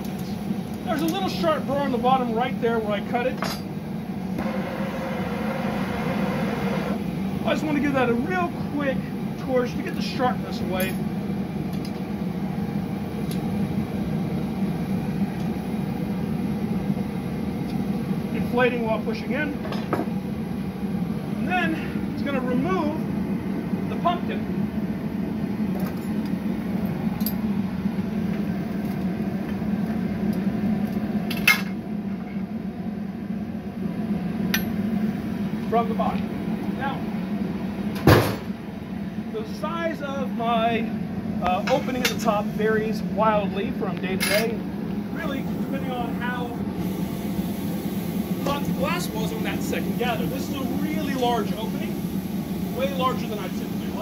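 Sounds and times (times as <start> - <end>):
gas burners and fan rushing: 0.0 - 54.0.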